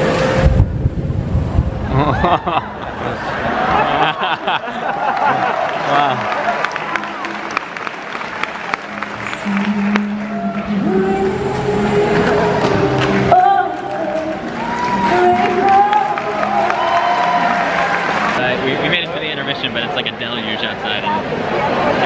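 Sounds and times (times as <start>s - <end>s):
audience clapping: 3.5s - 11.4s, 12.1s - 18.5s.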